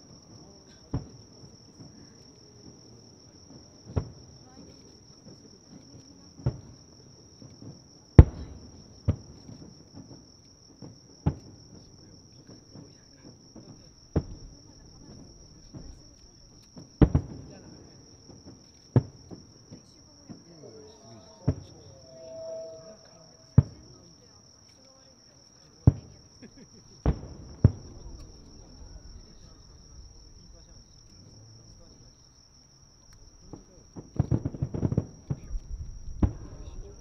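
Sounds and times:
high insect trill: 0.0 - 37.0
distant firework booms: 0.2 - 4.6, 6.4 - 24.3, 25.8 - 32.4, 33.2 - 37.0.

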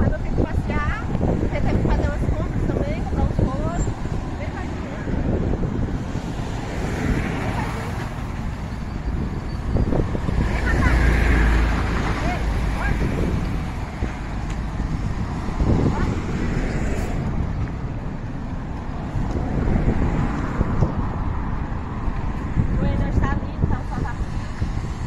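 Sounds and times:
road traffic passing: 0.0 - 25.0
wind rumbling on microphone: 0.0 - 25.0.

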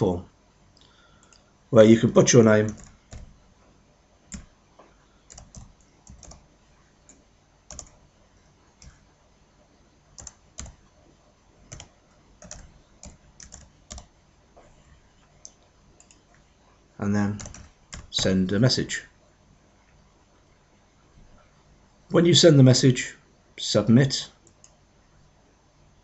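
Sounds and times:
computer keyboard key clicks: 2.7 - 3.3, 5.3 - 6.4, 7.7 - 8.0, 10.2 - 10.8, 11.7 - 14.1, 17.4 - 18.1.

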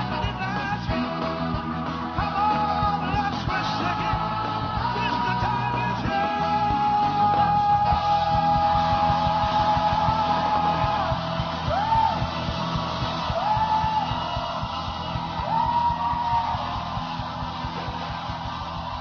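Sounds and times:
rock and roll band playing: 0.0 - 19.0
swooping yells: 13.0 - 19.0.

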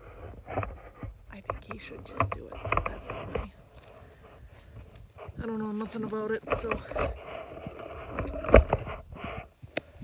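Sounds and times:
rustling and knocking from handling: 0.2 - 9.5.

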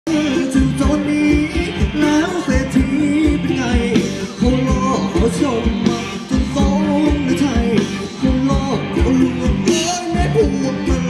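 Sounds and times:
person singing: 0.1 - 11.0
steady drum beat: 0.1 - 11.0.

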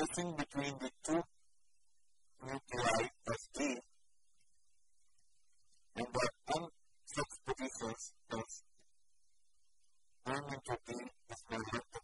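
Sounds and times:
man speaking: 0.0 - 1.3, 2.5 - 3.9, 6.0 - 8.7, 10.3 - 12.0.

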